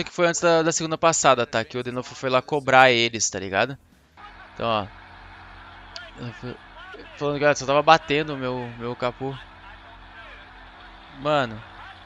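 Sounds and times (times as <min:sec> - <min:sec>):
low multi-tone hum: 0:00.0 - 0:12.0
faint voices: 0:04.2 - 0:12.0.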